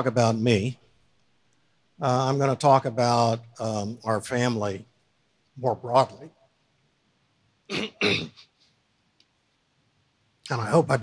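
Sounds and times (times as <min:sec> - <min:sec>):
man clearing his throat: 0:07.7 - 0:08.5.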